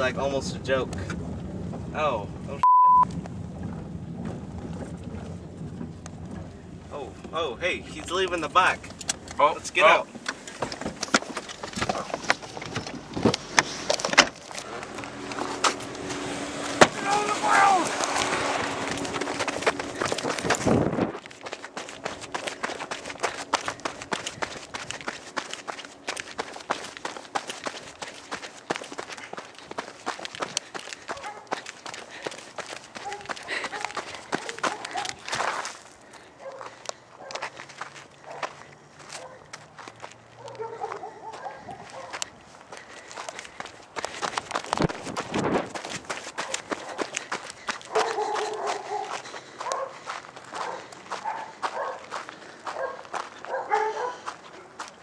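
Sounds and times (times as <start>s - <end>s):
footsteps crunching on dry dirt: 4.2s - 55.0s
indistinct voice: 17.0s - 18.0s
camera jolting: 17.8s - 27.2s.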